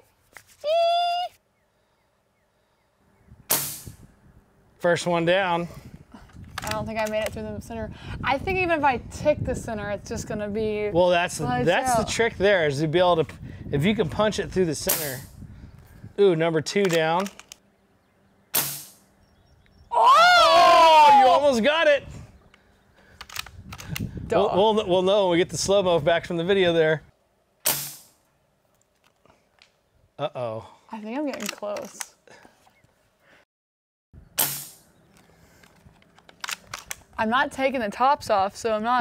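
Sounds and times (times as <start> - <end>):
air rifle shot: 3.5 - 4.0, 18.5 - 19.0, 27.6 - 28.2, 34.4 - 34.9.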